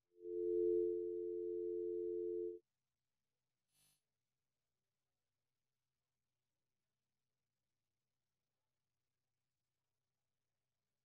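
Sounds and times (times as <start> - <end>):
two-pitch electronic tone: 0.0 - 2.6.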